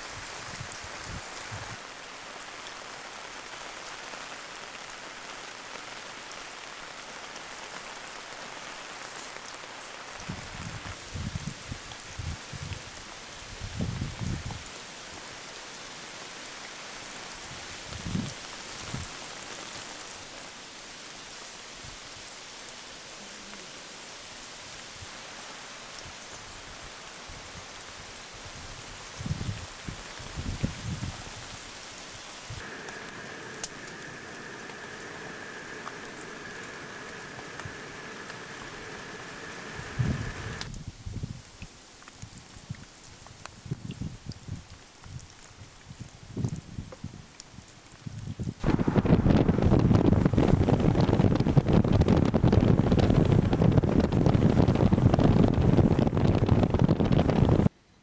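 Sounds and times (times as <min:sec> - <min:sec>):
rain on tent tarp and gravel: 0:00.0 - 0:57.7.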